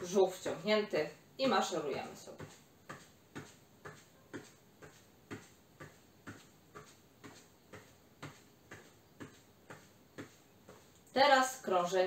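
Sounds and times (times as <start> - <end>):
soft footstep thuds on mat: 2.0 - 10.9.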